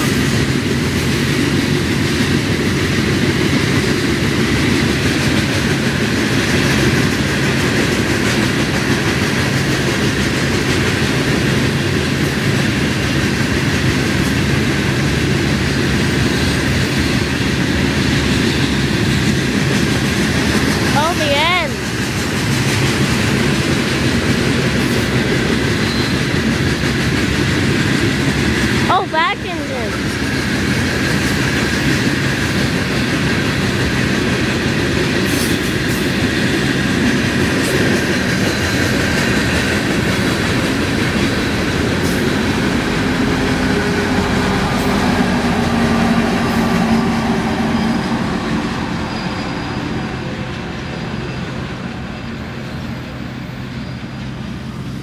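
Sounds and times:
freight train wheels rumbling: 0.0 - 55.0
wavering wheel squeals: 25.7 - 26.4, 45.8 - 54.3.

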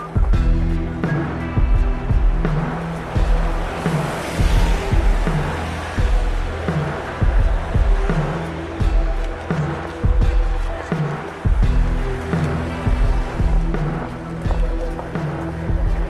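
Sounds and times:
hiss swell: 0.0 - 15.8
electronic drum and bass music: 0.0 - 16.0.

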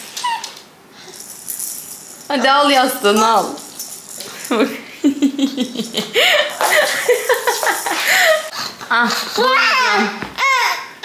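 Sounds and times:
plastic baby rattle shaken: 1.1 - 4.5, 6.5 - 8.0.

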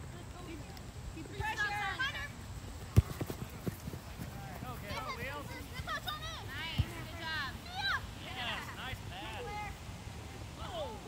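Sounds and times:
soccer ball kicked: 2.9 - 4.7, 6.6 - 7.2
footsteps running on grass: 2.9 - 7.0.

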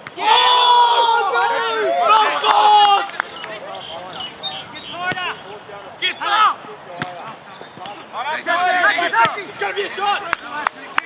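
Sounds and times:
people shouting: 0.0 - 3.3.

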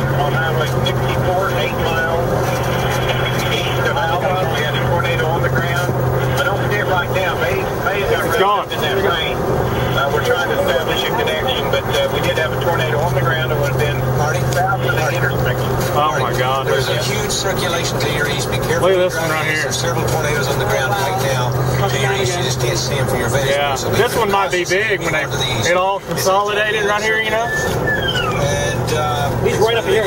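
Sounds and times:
indistinct voices talking: 0.0 - 30.0
vehicle cabin hum: 0.0 - 30.0.

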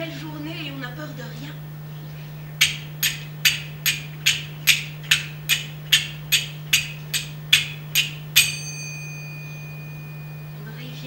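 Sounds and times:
hand percussion clicks: 2.6 - 8.8
bell-like ringing tone: 8.4 - 11.0.

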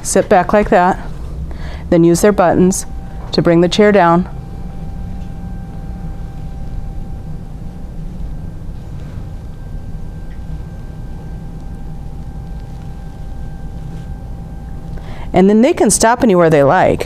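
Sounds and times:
lift chair motor humming: 0.0 - 17.0.

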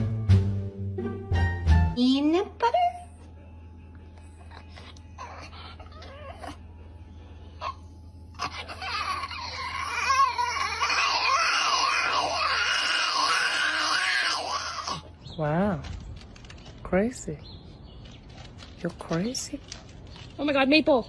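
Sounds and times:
small dog whimpering: 4.3 - 6.7, 7.6 - 15.1
small dog howling: 5.1 - 6.6, 7.6 - 15.1.

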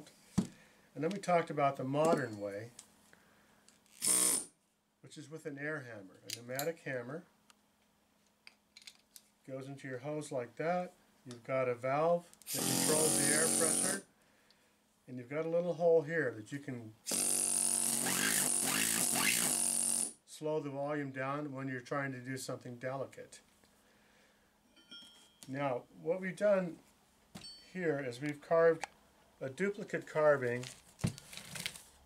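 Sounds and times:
pneumatic air hammer buzzing: 3.9 - 4.5, 12.5 - 14.0, 17.1 - 20.2.

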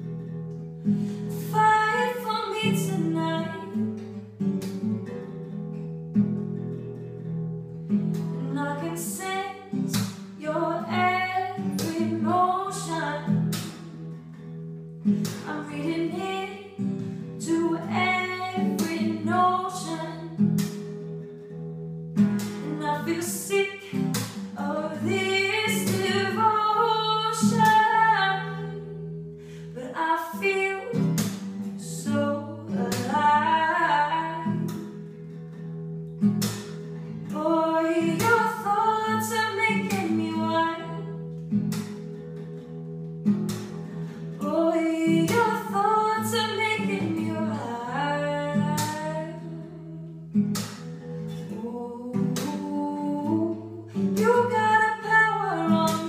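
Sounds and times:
acoustic guitar strumming: 0.0 - 51.6
woman singing: 1.2 - 4.1, 8.2 - 13.9, 15.2 - 20.8, 22.4 - 35.0, 37.2 - 41.2, 44.2 - 56.0.

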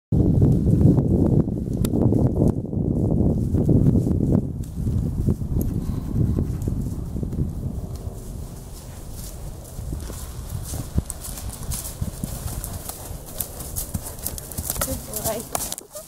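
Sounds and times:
horse hoofbeats cantering: 4.6 - 16.0.

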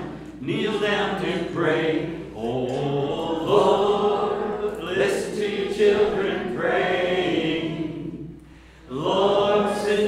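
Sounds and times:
congregation singing worship song: 0.0 - 10.0.

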